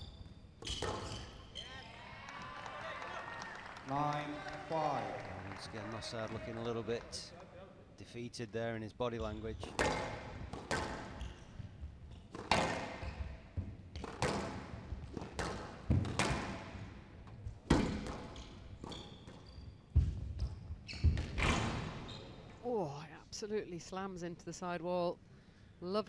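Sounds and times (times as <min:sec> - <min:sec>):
squash ball hits echoing: 0:00.6 - 0:01.4, 0:09.6 - 0:11.2, 0:12.3 - 0:16.9, 0:17.6 - 0:22.0.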